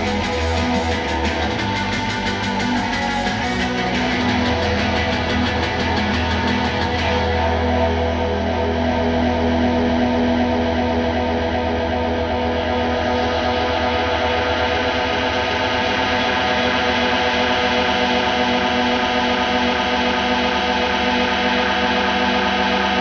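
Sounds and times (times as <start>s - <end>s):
bass guitar: 0.0s - 23.0s
droning electric guitar: 0.0s - 23.0s.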